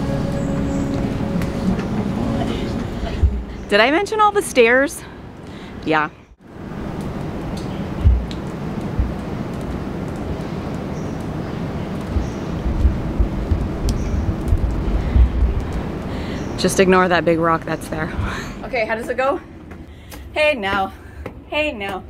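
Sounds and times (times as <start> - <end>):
wind buffeting microphone: 0.0 - 4.6, 7.3 - 19.0.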